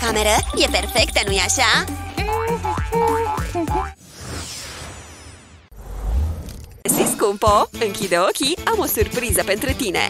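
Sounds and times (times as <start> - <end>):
upbeat background music: 0.0 - 4.0, 6.9 - 10.0.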